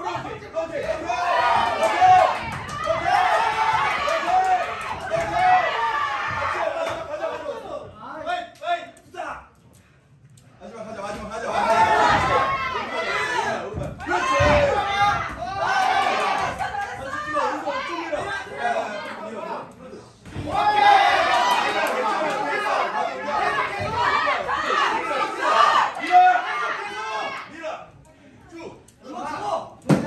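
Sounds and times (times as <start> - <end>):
people talking and shouting: 0.0 - 30.0.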